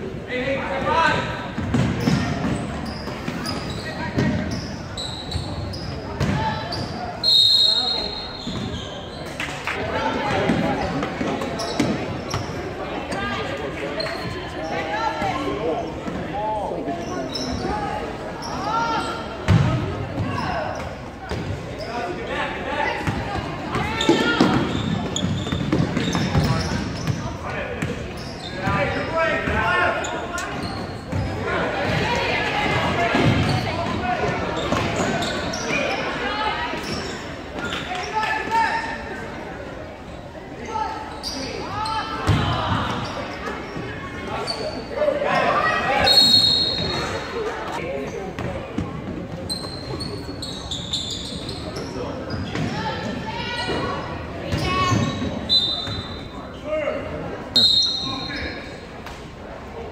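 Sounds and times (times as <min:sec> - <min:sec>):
echoing indistinct chatter: 0:00.0 - 0:59.9.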